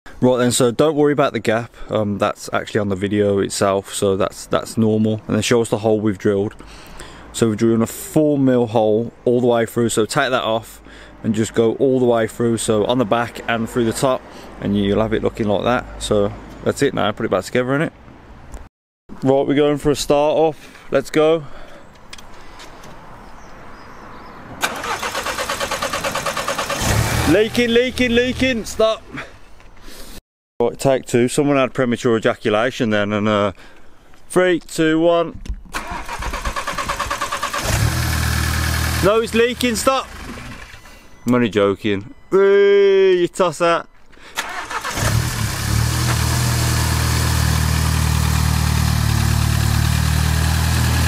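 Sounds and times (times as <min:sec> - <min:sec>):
car engine cranking on starter: 0:24.6 - 0:27.6, 0:35.7 - 0:41.0, 0:44.3 - 0:50.9.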